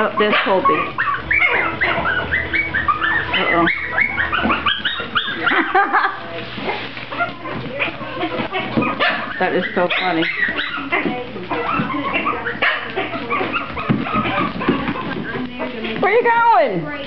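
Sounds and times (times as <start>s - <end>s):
puppies yipping: 0.0s - 17.0s.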